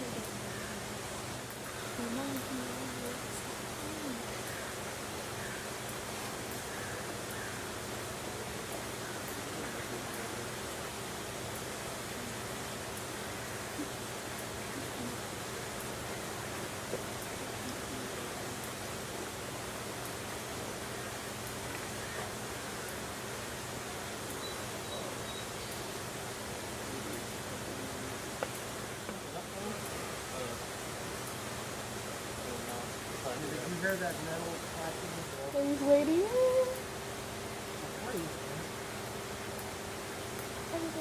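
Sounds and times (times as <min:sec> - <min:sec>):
outdoor background hiss: 0:00.0 - 0:41.0.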